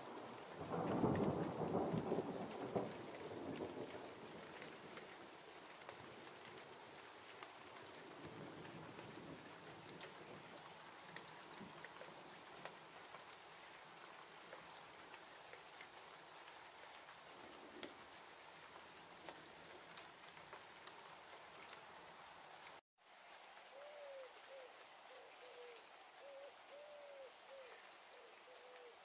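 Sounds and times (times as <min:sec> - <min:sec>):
raindrops ticking: 0:00.0 - 0:22.8
light rain hiss: 0:00.0 - 0:29.0.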